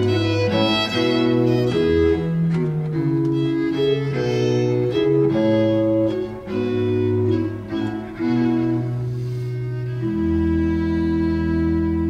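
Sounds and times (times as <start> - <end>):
baroque chamber ensemble playing: 0.0 - 12.0.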